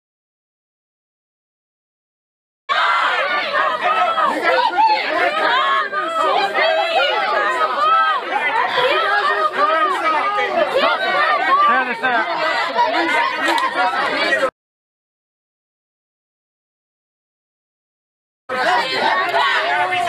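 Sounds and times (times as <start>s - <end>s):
many voices chattering: 2.7s - 14.6s, 18.5s - 20.0s.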